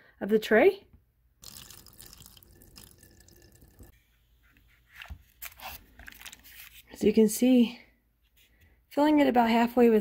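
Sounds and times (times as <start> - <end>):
water trickling into plastic tray: 1.4 - 3.9.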